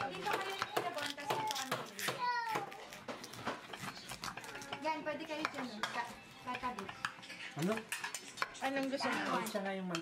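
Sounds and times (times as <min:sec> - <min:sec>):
knife and fork scraping plate: 0:02.8 - 0:10.0.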